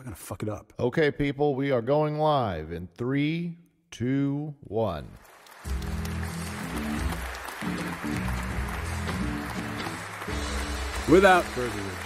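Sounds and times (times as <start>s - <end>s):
studio audience applause: 5.2s - 12.0s
theme tune with strong bass: 5.7s - 12.0s.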